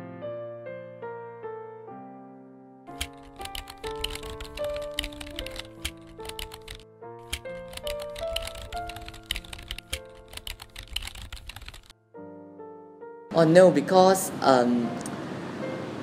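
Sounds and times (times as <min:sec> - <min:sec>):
gentle background music: 0:00.0 - 0:16.0
keyboard key clicks: 0:02.9 - 0:11.9.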